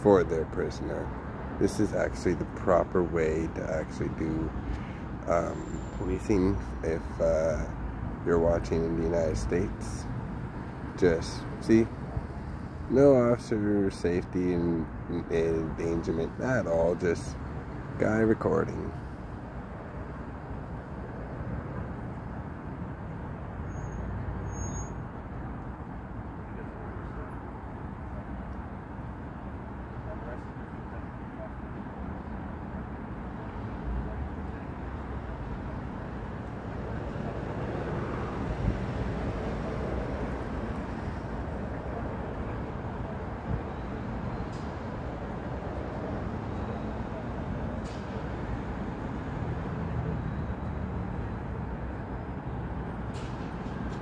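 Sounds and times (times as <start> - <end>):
low rumble of traffic: 0.0 - 54.0.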